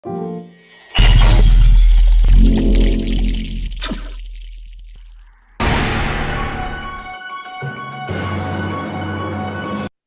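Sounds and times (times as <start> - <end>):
bright ringing crash: 0.6 - 7.2
heavy low boom hit: 1.0 - 7.1.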